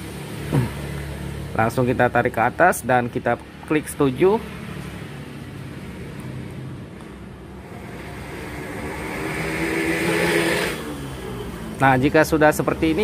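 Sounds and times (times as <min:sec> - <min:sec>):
motor vehicle passing by: 0:04.0 - 0:13.0.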